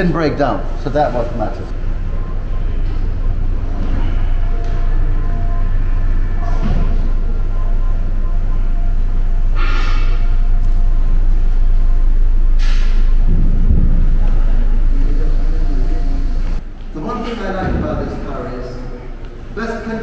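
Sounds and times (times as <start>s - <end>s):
loud low rumble: 1.6s - 16.6s.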